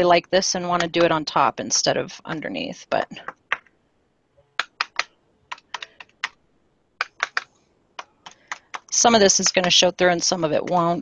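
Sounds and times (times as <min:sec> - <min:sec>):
card edge tapping on paper: 0:04.6 - 0:06.4, 0:07.0 - 0:07.5, 0:08.2 - 0:08.9.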